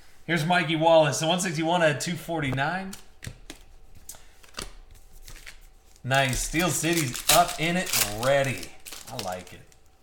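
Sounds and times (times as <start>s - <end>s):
trading cards clicking on table: 2.9s - 5.5s.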